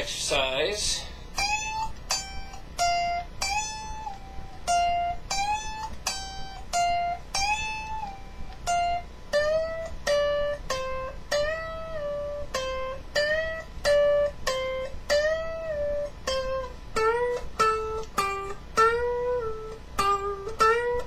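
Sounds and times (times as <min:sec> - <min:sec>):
electric guitar bent notes: 0:01.2 - 0:21.0.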